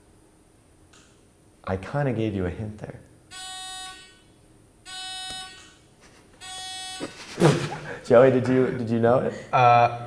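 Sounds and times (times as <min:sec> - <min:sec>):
burst of laughter: 0:07.0 - 0:08.0.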